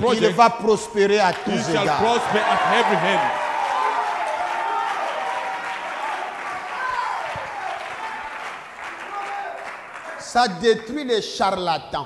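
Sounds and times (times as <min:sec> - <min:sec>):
congregation applauding: 0:01.2 - 0:10.6
voices calling out: 0:01.3 - 0:05.1.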